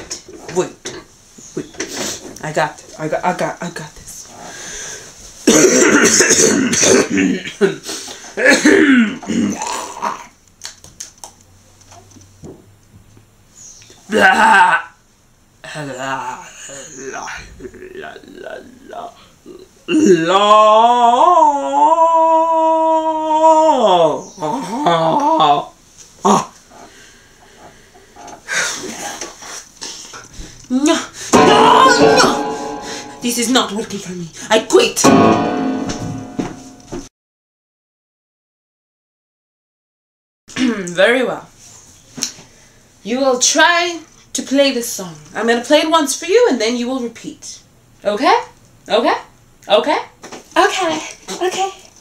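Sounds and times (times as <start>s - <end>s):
faint room sound: 0.0s - 37.1s
person croaking strained vocal sound: 8.8s - 10.4s, 19.4s - 23.1s
person yelping: 31.4s - 32.4s.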